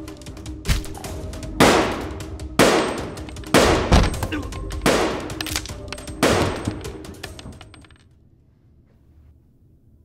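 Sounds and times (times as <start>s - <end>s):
loud gunshots: 1.6s - 4.1s, 4.8s - 5.4s, 6.2s - 6.9s.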